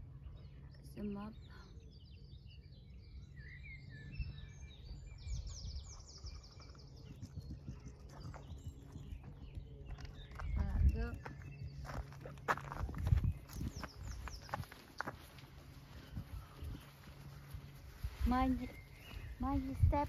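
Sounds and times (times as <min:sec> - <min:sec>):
low wind rumble: 0:00.0 - 0:20.0
songbird chirping: 0:00.0 - 0:20.0
footsteps on grass: 0:06.5 - 0:20.0.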